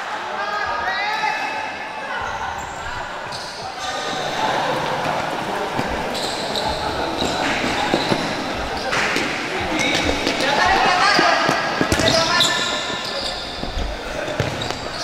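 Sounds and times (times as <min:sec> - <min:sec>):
players calling out: 0:01.1 - 0:15.0.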